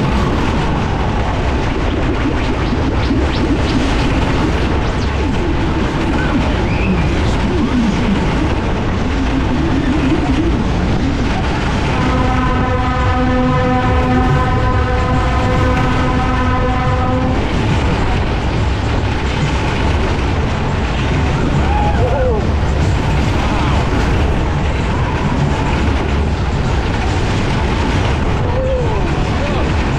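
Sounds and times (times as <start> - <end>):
ride cars rumbling on track: 0.0 - 29.9
rush of wind: 0.0 - 29.9
steady horn-like tone: 11.8 - 17.5.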